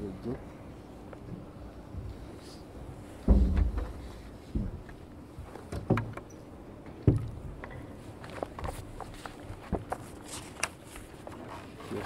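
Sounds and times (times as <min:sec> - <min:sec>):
dull thumps: 0:03.2 - 0:05.0.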